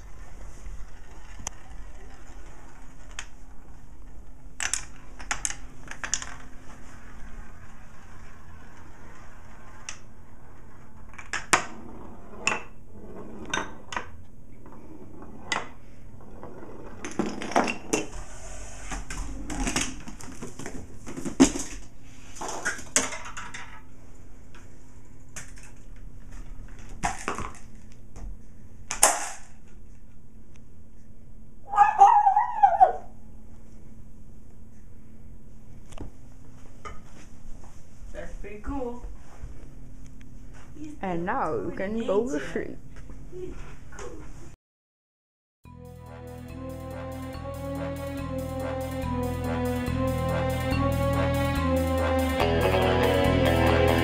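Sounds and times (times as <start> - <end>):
marble rolling on wooden run: 0.1 - 4.2, 5.4 - 18.0.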